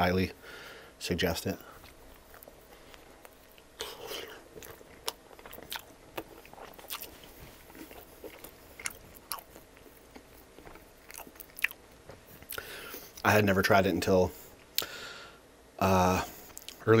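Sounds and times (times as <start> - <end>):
crust crackling: 1.4 - 13.3
chewing close to microphone: 1.8 - 11.8
wet mouth clicks: 16.5 - 16.8.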